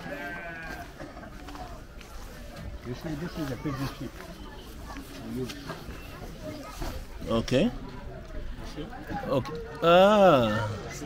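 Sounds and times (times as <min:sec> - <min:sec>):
livestock bleat: 0:00.0 - 0:01.0.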